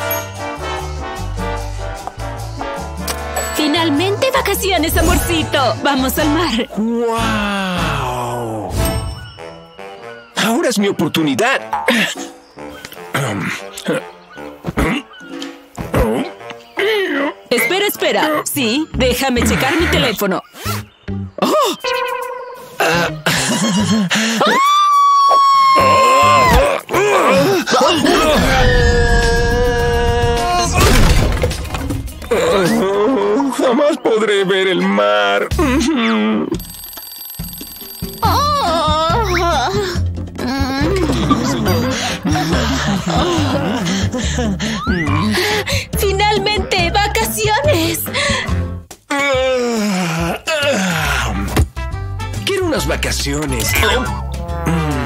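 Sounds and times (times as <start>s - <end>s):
woman screaming: 24.4s - 26.7s, 38.2s - 39.8s
woman's wavering vocal sounds: 38.2s - 42.7s
man yawning: 49.1s - 51.2s, 54.4s - 55.0s.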